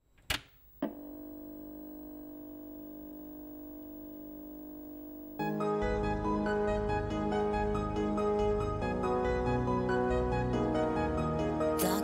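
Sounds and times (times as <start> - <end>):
held electronic chord: 0.8 - 9.0.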